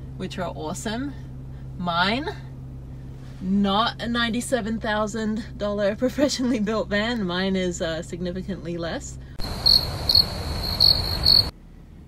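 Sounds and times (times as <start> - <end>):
crickets chirping: 9.4 - 11.5.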